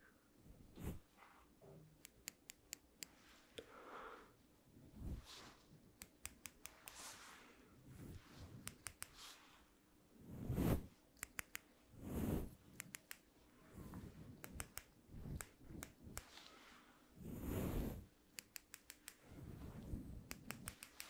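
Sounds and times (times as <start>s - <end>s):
brushing against microphone windscreen: 0.7s - 1.2s, 5.0s - 5.7s, 10.2s - 11.0s, 12.0s - 12.6s, 15.1s - 18.1s, 19.2s - 20.3s
scissors snipping: 18.4s - 19.2s, 20.3s - 21.0s.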